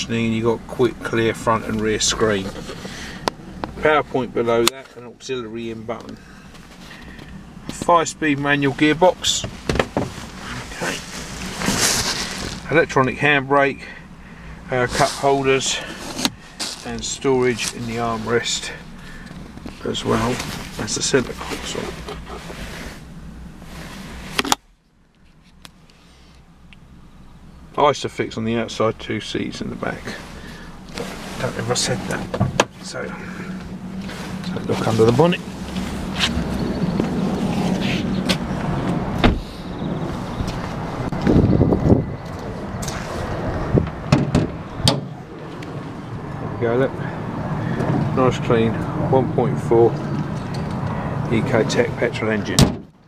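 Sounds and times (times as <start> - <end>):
car door shutting: 9.2 - 10.3, 30.9 - 42.0, 42.8 - 45.3, 52.5 - 53.0
handling rustle: 9.5 - 12.8, 14.8 - 26.4, 30.0 - 38.5
car bonnet clicks and knocks: 9.6 - 10.2, 43.8 - 45.2, 52.6 - 53.0
low rumble: 29.6 - 49.1.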